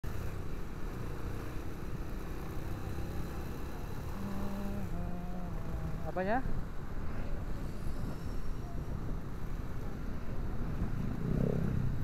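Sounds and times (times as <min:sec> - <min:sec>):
motorcycle engine: 0:00.0 - 0:06.1
road noise: 0:00.0 - 0:12.0.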